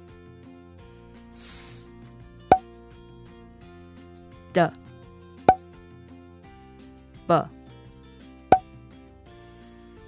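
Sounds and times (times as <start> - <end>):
gentle background music: 0.0 - 10.0.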